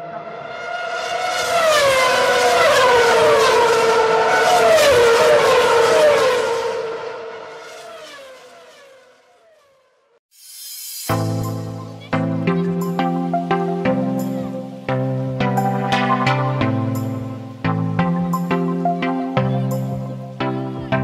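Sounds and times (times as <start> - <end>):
race car engine high revs: 0.2 - 9.0.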